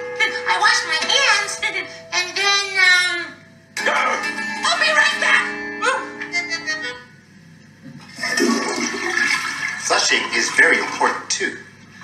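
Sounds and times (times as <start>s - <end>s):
toilet flushing: 8.0s - 12.0s.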